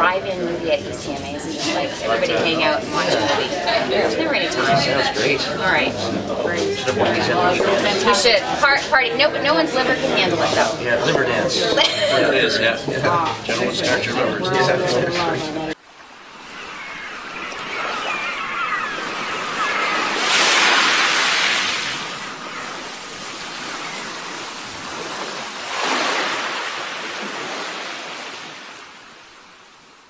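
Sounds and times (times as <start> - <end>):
waves washing ashore: 0.0 - 30.0.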